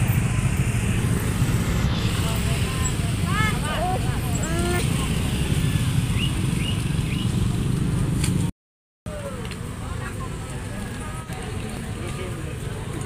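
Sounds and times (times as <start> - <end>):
indistinct voices of passers-by: 0.0 - 8.5, 9.1 - 13.0
low rumble of traffic: 0.0 - 8.5, 9.1 - 13.0.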